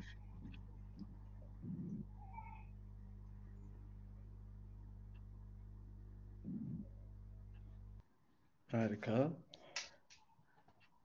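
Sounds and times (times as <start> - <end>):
faint low hum: 0.0 - 11.0
faint high-pitched squeak: 1.8 - 2.8.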